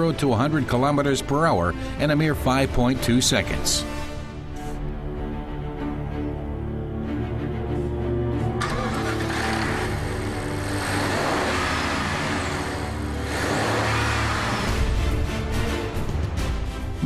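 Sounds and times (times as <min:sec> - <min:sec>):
background music: 0:00.0 - 0:17.0
car driving by: 0:08.5 - 0:16.4.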